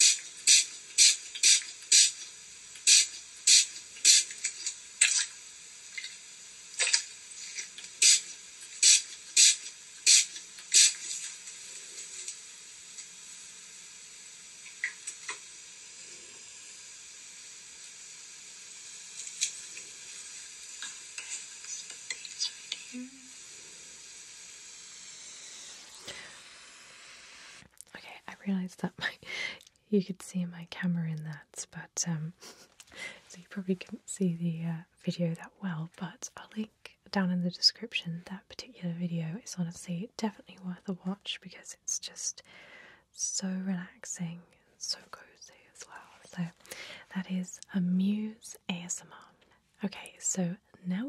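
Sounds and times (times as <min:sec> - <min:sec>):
steady background hiss: 0:00.0 - 0:51.0.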